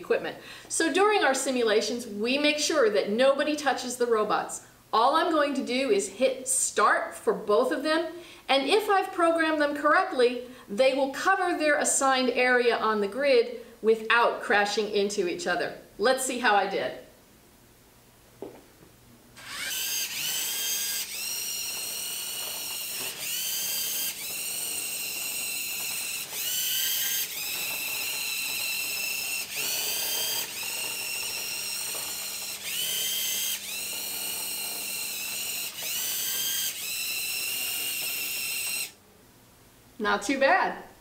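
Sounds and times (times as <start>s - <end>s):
toy robot motors whining: 19.4s - 39.0s.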